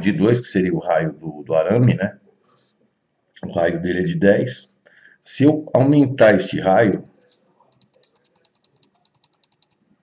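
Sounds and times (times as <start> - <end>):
faint computer mouse clicks: 7.2 - 9.8.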